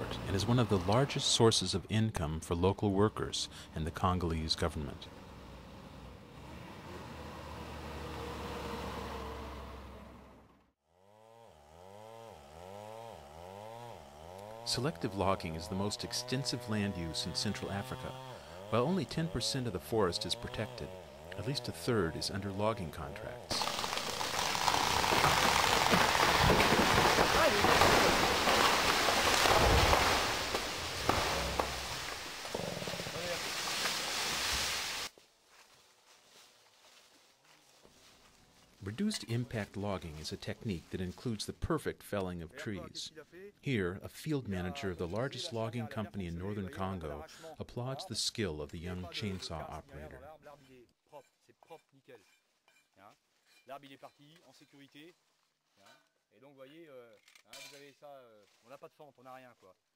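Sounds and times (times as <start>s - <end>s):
tree crashing through leaves: 23.5s - 35.1s
branches snapping: 23.5s - 35.7s.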